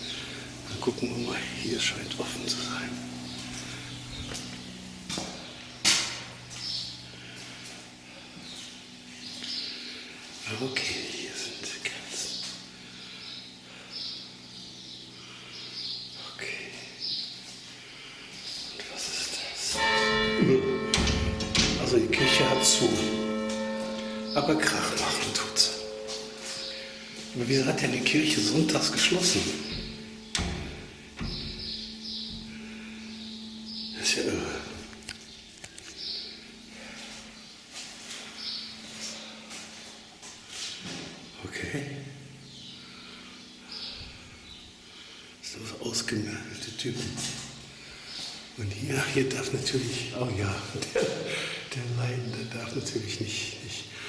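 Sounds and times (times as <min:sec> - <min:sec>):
steady low hum: 0:00.0 - 0:54.0
footsteps: 0:02.9 - 0:09.4, 0:19.8 - 0:27.9, 0:36.9 - 0:41.2.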